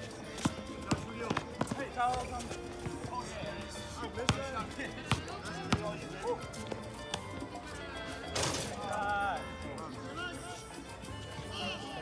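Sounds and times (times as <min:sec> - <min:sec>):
basketball bouncing: 0:00.4 - 0:01.8.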